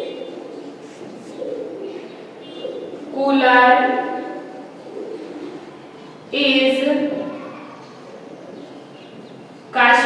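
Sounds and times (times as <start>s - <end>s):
bird cooing: 0.0s - 6.3s, 7.1s - 9.3s.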